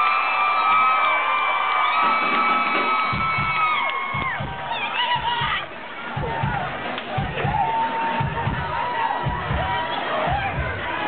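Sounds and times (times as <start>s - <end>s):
crowd cheering and whooping: 0.0s - 11.0s
low drum hits: 2.2s - 4.7s.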